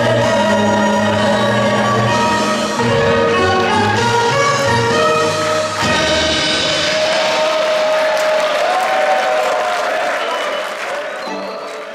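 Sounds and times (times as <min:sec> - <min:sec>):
audience applause and cheering: 0:02.9 - 0:11.9.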